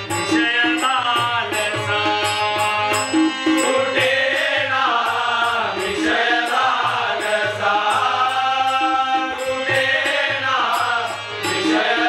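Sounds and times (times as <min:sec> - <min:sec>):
harmonium: 0:00.0 - 0:12.0
solo singer leading: 0:00.1 - 0:12.0
male voices singing together: 0:00.2 - 0:12.0.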